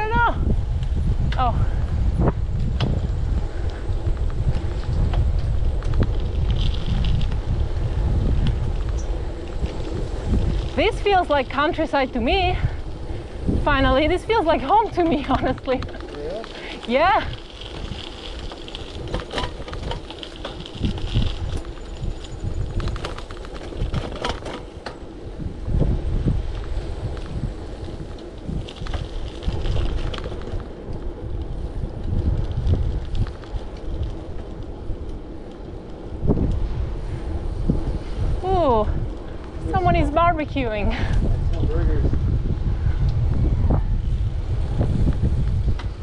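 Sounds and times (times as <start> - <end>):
bicycle rattles and clicks: 0.0 - 46.0
wind buffeting microphone: 0.0 - 46.0.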